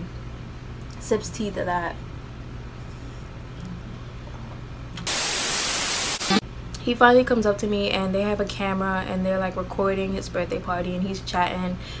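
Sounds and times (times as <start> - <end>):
static hiss burst: 5.0 - 6.4.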